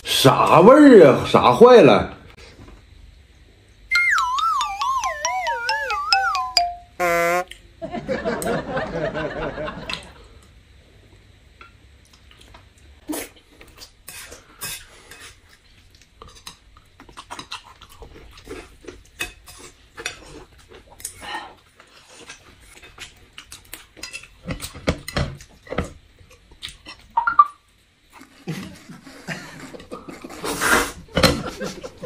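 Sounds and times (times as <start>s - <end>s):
sliding whistle tone: 3.9s - 7.5s
chewing and lip-smacking: 15.5s - 19.1s, 26.3s - 27.2s.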